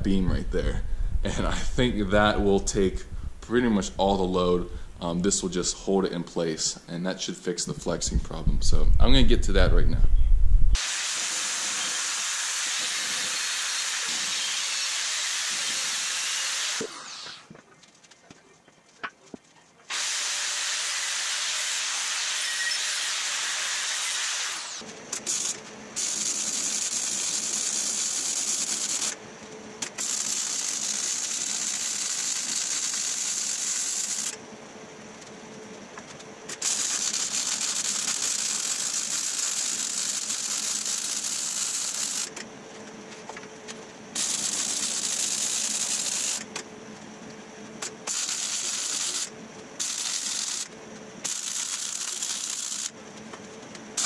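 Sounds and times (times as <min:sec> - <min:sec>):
angle grinder grinding steel: 0:10.8 - 0:17.5, 0:19.9 - 0:24.8
welder crackling hiss: 0:10.8 - 0:17.5, 0:19.9 - 0:29.2, 0:29.9 - 0:34.4, 0:36.5 - 0:42.4, 0:44.2 - 0:46.5, 0:48.0 - 0:53.0.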